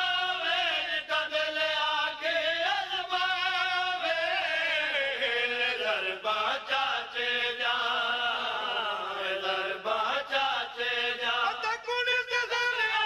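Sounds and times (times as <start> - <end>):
man chanting devotional verse: 0.0 - 13.0.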